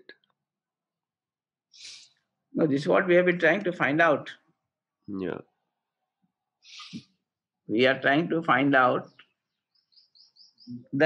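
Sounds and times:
bird chirping: 0:06.6 - 0:07.1, 0:07.8 - 0:11.0.

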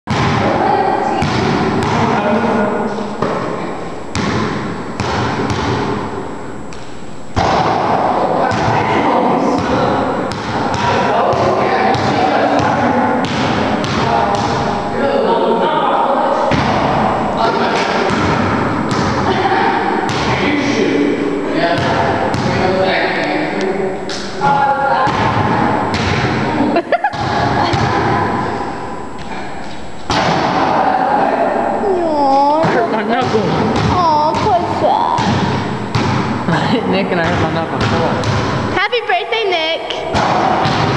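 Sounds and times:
basketball bouncing on floor: 0:00.1 - 0:00.6, 0:01.2 - 0:02.2, 0:04.1 - 0:06.0, 0:20.1 - 0:20.4, 0:21.8 - 0:22.6, 0:32.6 - 0:36.3, 0:37.2 - 0:38.7
people talking and calling out: 0:05.9 - 0:40.7.

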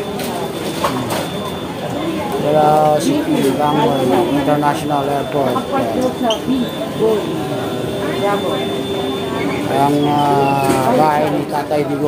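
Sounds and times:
crowd noise: 0:00.0 - 0:12.0
people talking: 0:00.0 - 0:12.0.

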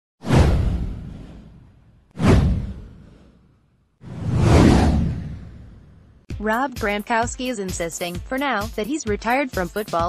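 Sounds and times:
deep boom: 0:00.2 - 0:03.3, 0:04.0 - 0:06.3
whoosh sound effect: 0:00.2 - 0:06.2.

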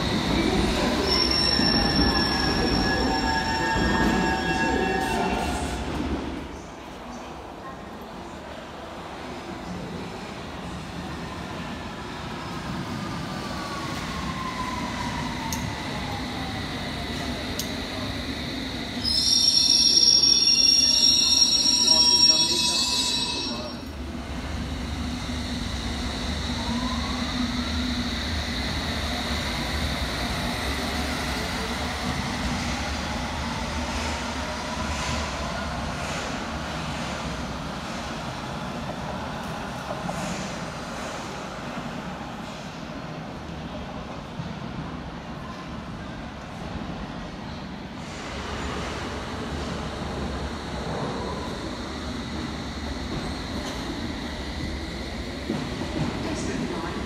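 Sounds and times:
high-pitched brake squeal: 0:00.9 - 0:05.8, 0:19.0 - 0:23.8.

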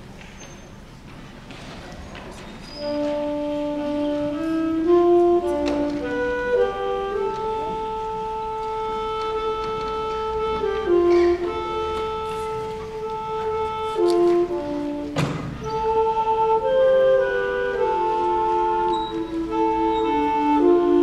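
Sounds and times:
concert band sustained chords: 0:02.8 - 0:21.0.

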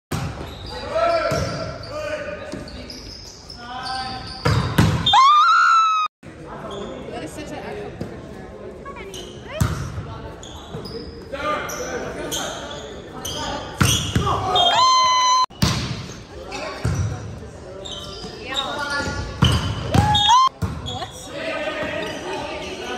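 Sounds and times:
players shouting and calling: 0:13.2 - 0:15.6, 0:18.0 - 0:22.9.

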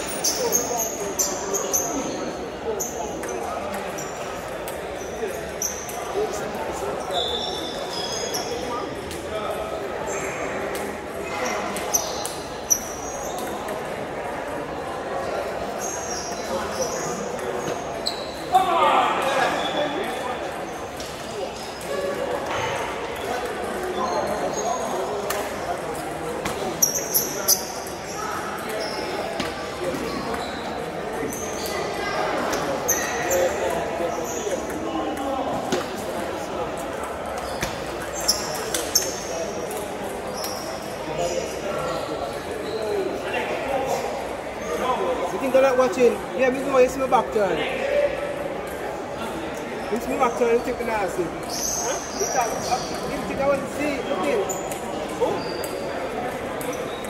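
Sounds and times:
chatter in sports hall: 0:00.0 - 0:57.0.

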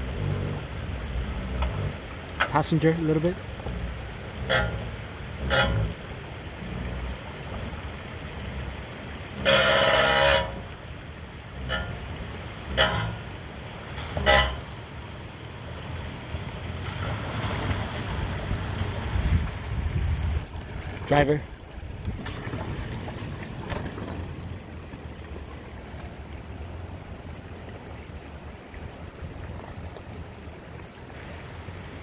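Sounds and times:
running water: 0:00.0 - 0:32.0
truck engine at low crawl: 0:00.0 - 0:32.0
loud steady tone: 0:04.4 - 0:06.0, 0:12.7 - 0:13.3, 0:14.2 - 0:14.8.

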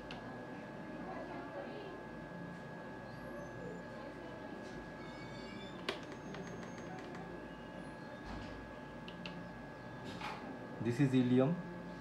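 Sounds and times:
electrical hum of machine: 0:00.0 - 0:12.0.

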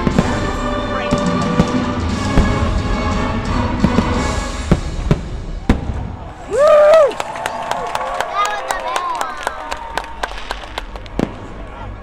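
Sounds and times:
music soundtrack: 0:00.0 - 0:05.7.

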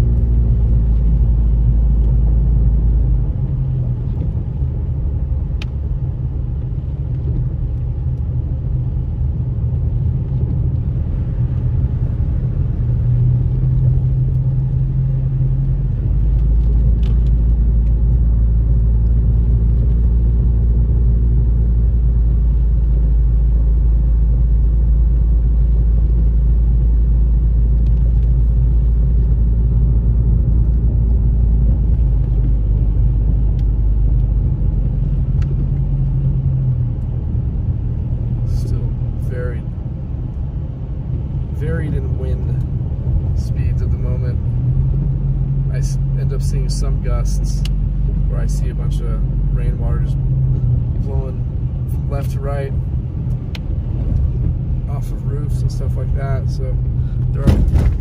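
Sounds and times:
car engine and tyres rumbling: 0:00.0 - 0:58.0.

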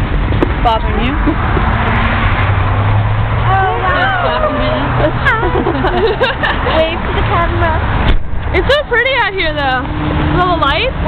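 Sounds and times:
road traffic engine hum: 0:00.0 - 0:11.0
tyre and road noise: 0:00.0 - 0:11.0.

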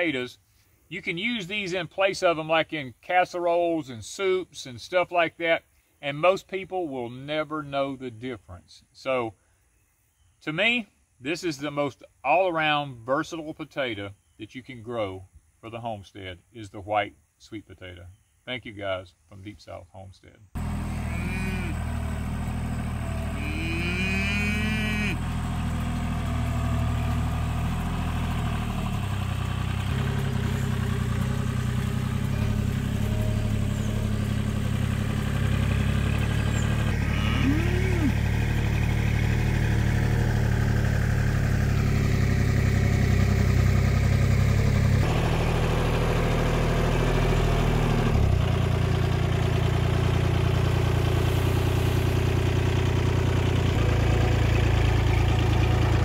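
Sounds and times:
tractor engine running: 0:20.6 - 0:56.0
cow lowing: 0:20.9 - 0:22.1, 0:23.3 - 0:25.4, 0:36.9 - 0:38.2.

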